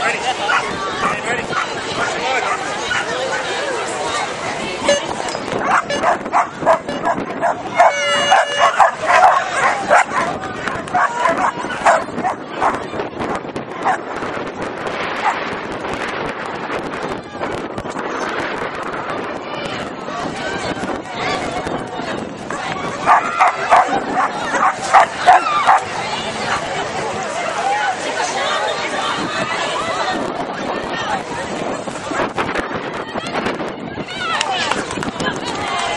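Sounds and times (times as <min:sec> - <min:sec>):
crowd chatter: 0:00.0 - 0:35.9
dog barking: 0:05.6 - 0:10.3, 0:10.9 - 0:12.8, 0:23.0 - 0:25.8.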